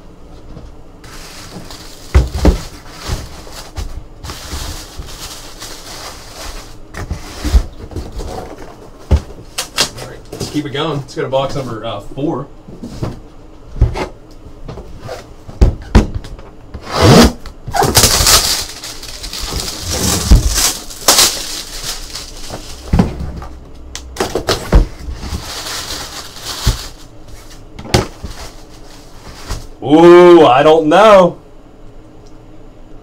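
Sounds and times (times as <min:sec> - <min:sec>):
paper rustling: 0:01.0 - 0:08.8, 0:17.8 - 0:23.0, 0:24.5 - 0:29.8
plastic shrink-wrap tearing: 0:01.1 - 0:06.8, 0:17.1 - 0:22.9, 0:24.5 - 0:27.6.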